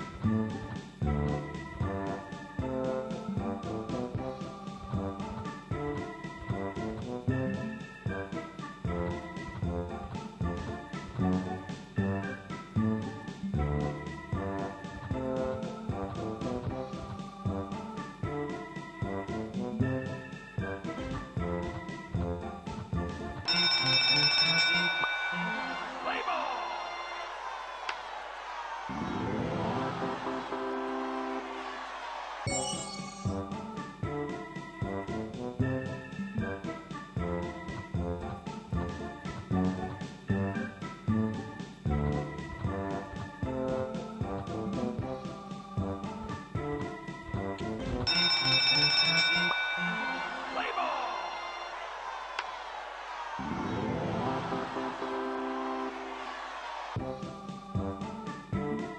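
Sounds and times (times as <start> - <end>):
organ-style music notes: 5.2 - 16.6, 17.7 - 23.5, 29.0 - 31.9, 32.5 - 45.0, 50.0 - 52.0, 53.5 - 57.4
ringing bell jingle: 23.5 - 26.3, 32.5 - 33.4, 48.1 - 50.8.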